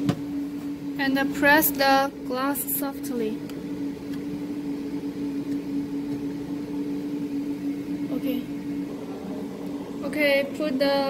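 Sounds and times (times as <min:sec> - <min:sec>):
steady machine hum: 0:00.0 - 0:11.0
faint wavering sound: 0:00.4 - 0:11.0.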